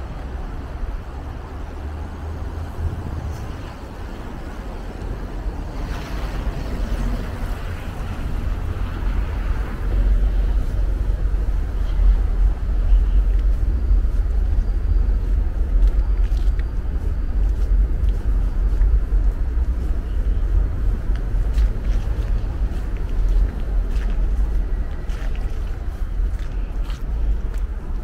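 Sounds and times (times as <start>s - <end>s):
wind buffeting microphone: 0.0s - 28.0s.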